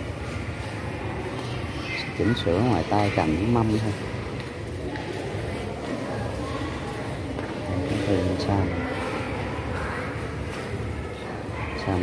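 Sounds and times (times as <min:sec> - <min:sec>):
crowd murmur indoors: 0:00.0 - 0:12.0.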